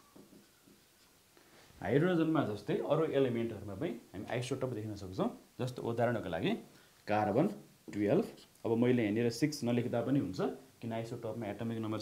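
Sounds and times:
man speaking: 1.8s - 12.0s.

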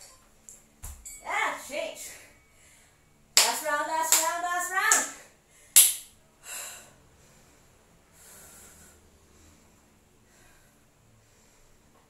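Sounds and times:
sharp hand clap: 3.4s - 5.1s, 5.8s - 6.1s
woman breathing out heavily: 6.4s - 11.9s.

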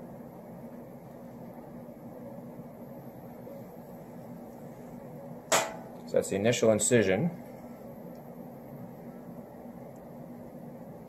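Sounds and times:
low even hum: 0.0s - 11.0s.

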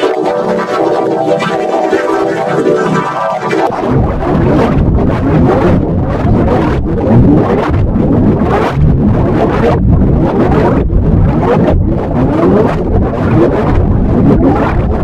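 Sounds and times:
distorted noise with sliding sweeps: 0.0s - 15.0s.

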